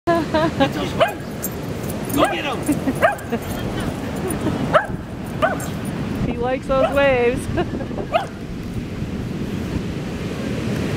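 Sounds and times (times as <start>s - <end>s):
wind rumbling on microphone: 0.9s - 10.9s.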